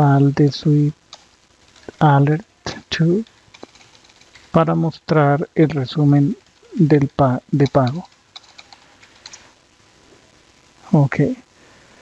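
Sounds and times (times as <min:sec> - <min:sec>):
keyboard typing clicks: 0:03.5 - 0:04.4, 0:07.6 - 0:09.4.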